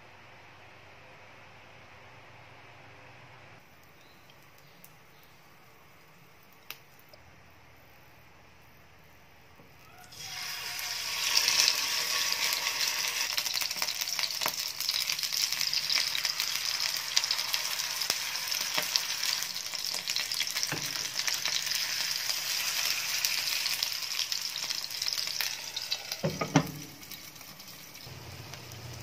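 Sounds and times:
fish sizzling in hot oil: 10.1 - 29.0.

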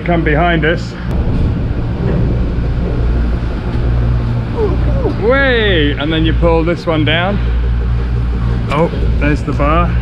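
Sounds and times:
machinery humming: 0.0 - 10.0
rushing noise: 1.1 - 10.0.

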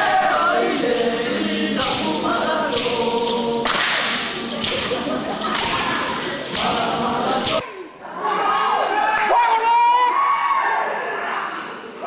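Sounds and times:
group chanting in unison: 0.0 - 8.9.

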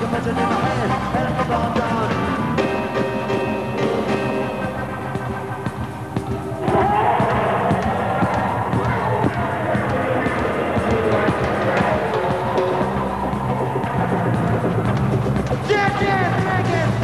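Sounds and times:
drums and timbales: 0.0 - 17.0
live rock band: 0.0 - 17.0
voices: 0.0 - 17.0.

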